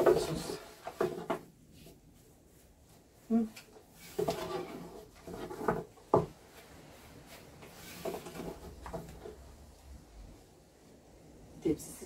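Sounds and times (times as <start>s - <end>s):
rolling pin on wooden board: 0.0s - 2.0s, 4.0s - 6.4s, 7.6s - 9.4s.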